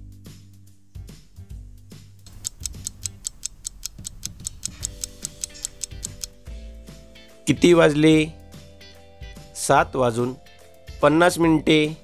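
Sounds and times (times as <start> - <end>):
soft background music: 0.0 - 12.0
rapid clock ticking: 2.3 - 6.3.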